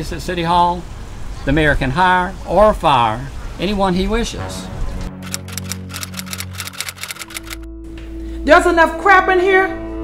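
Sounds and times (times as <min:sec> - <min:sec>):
background music: 0:04.2 - 0:10.0
typewriter keystroke clicks: 0:05.2 - 0:07.6.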